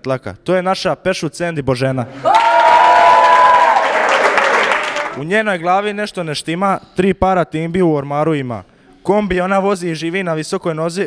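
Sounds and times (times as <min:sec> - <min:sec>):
person cheering high: 0:02.2 - 0:05.0
small group clapping and cheering: 0:02.2 - 0:05.2.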